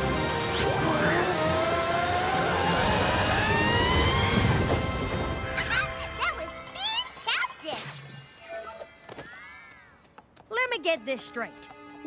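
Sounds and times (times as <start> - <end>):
background music: 0.0 - 7.8, 10.5 - 12.0.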